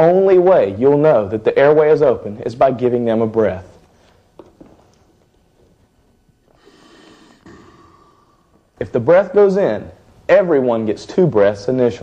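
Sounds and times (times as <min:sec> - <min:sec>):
breathy rush of rescue breath: 0:06.6 - 0:08.5.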